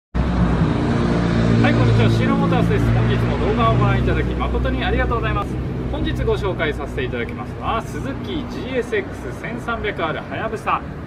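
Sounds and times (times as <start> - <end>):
man talking: 1.6 - 11.0.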